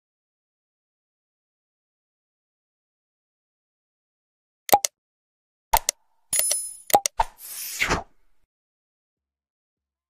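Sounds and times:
sharp mouse clicks: 0:04.7 - 0:04.9, 0:05.8 - 0:07.6.

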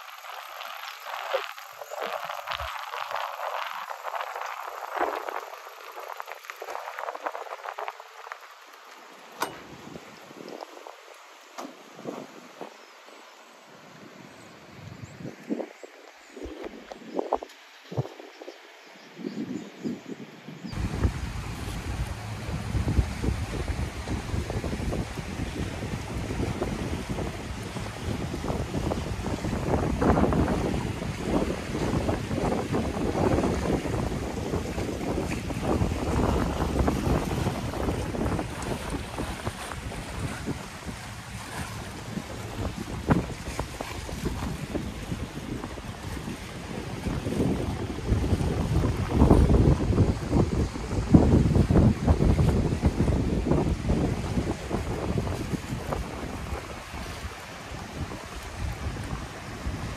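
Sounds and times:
choppy water washing: 0:00.0 - 0:59.9
wind buffeting microphone: 0:09.4 - 0:12.8, 0:19.2 - 0:59.9.

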